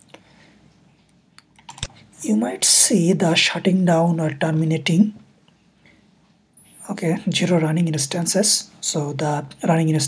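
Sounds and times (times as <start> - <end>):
computer clicks: 1.5 - 2.0.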